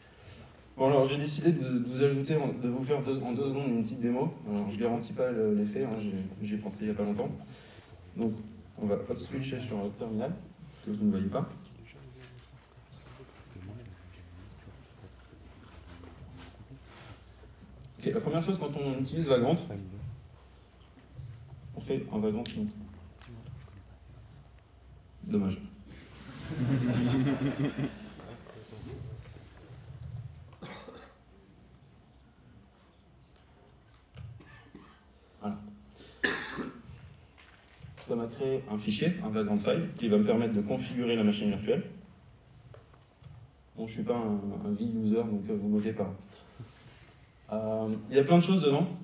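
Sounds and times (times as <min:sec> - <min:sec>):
person coughing: 0:30.6 - 0:31.3, 0:36.2 - 0:36.9.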